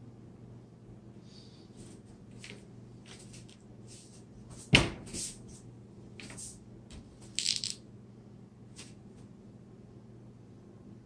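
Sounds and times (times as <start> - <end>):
low steady hum: 0.0 - 4.6, 5.4 - 11.0.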